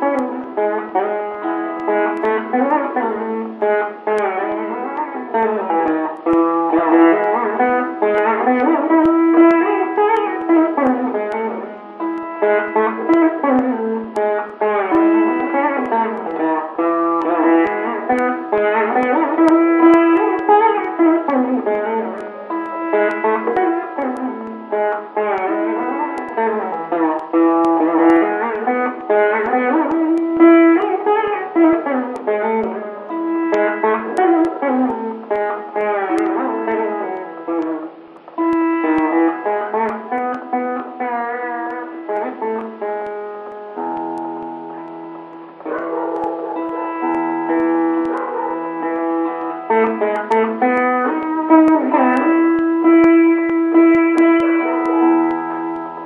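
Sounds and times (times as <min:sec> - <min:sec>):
plucked string instrument melody: 0:00.0 - 0:56.0.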